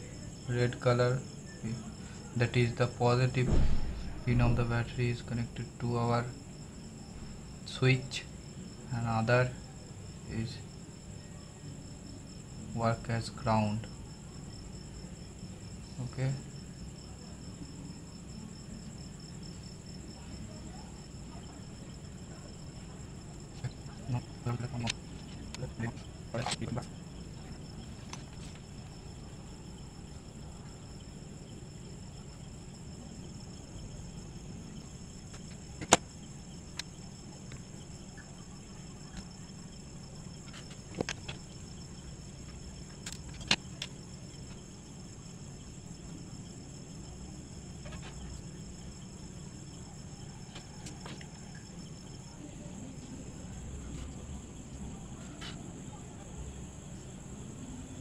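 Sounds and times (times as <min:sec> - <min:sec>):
steady low hum: 0:00.0 - 0:58.0.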